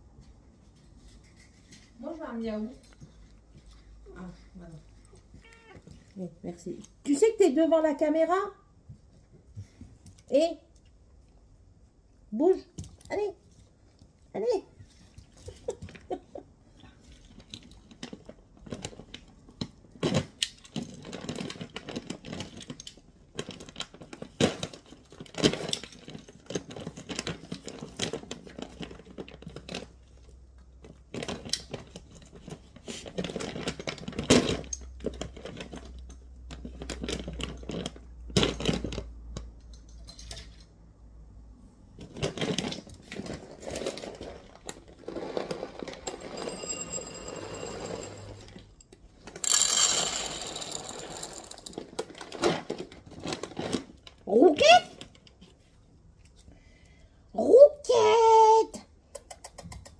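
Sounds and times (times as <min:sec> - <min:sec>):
dry kibble rattling: 0:42.0 - 0:48.7, 0:49.3 - 0:54.2.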